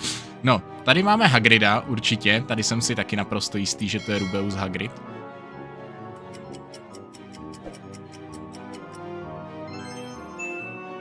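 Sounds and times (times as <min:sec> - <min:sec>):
quiz countdown music: 0:05.9 - 0:09.5
fast clock-like ticking: 0:06.2 - 0:09.1.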